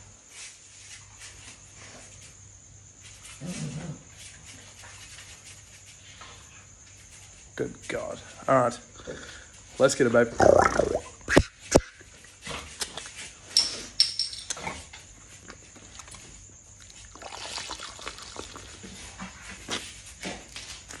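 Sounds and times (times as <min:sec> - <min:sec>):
beer glugging from bottle: 0:10.3 - 0:11.4, 0:17.1 - 0:18.8.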